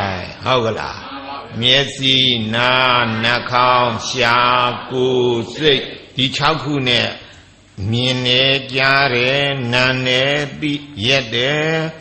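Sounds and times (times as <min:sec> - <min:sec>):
man chanting a recitation: 0:00.0 - 0:12.0.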